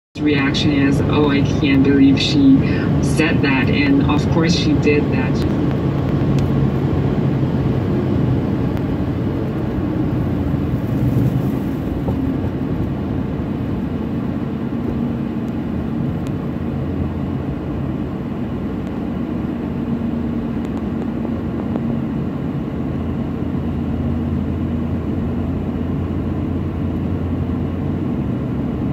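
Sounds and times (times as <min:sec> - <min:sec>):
vehicle road and engine noise: 0:00.2 - 0:28.9.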